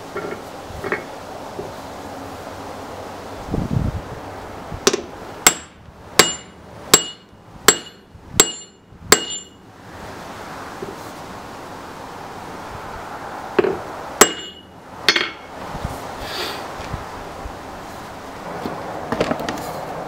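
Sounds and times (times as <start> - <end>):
hammer strikes on steel: 4.8 - 9.6, 13.6 - 15.5.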